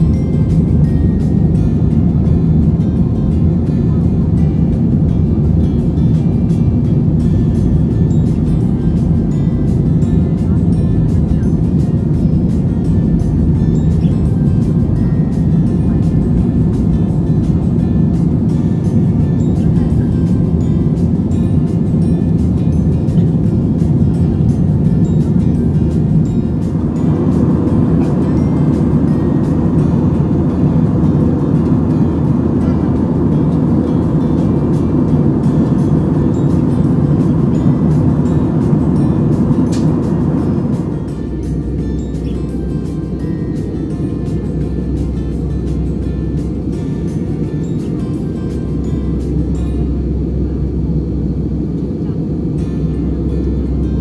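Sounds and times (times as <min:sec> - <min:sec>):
jet cabin roar: 0:00.0 - 0:54.0
music playing: 0:00.0 - 0:54.0.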